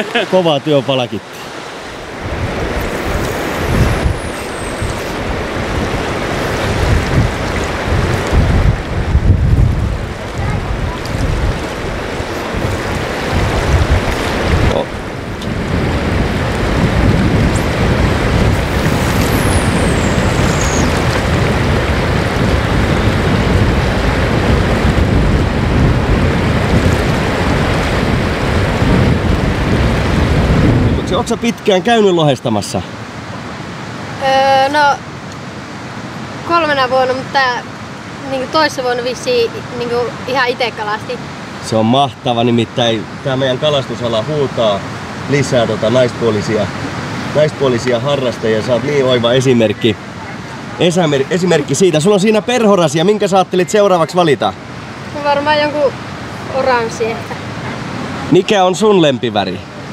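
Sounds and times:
fast choppy river rushing: 0.0s - 59.9s
wind buffeting microphone: 1.6s - 31.7s.

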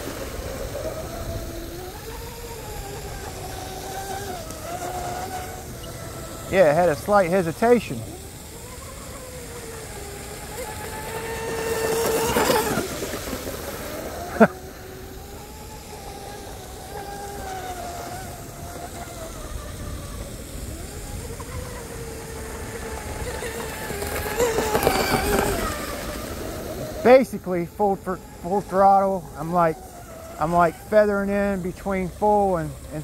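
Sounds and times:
electric motor whine: 0.0s - 33.0s.

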